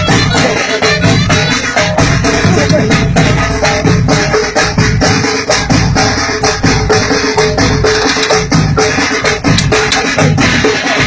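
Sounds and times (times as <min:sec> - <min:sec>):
bass drums beating: 0:00.0 - 0:11.0
snare drums beating: 0:00.0 - 0:11.0.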